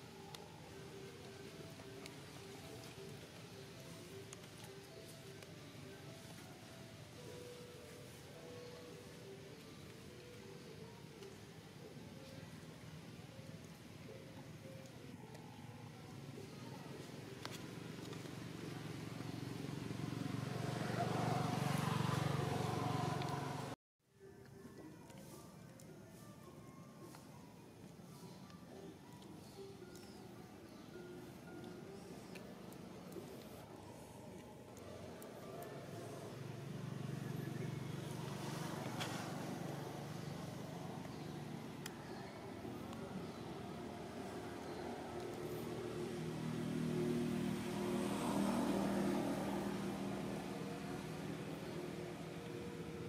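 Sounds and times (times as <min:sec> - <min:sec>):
vehicle engine rumble: 0:15.8 - 0:23.8.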